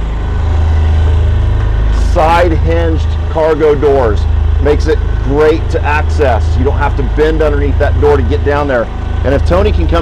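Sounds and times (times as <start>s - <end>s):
diesel generator droning: 0.0s - 10.0s.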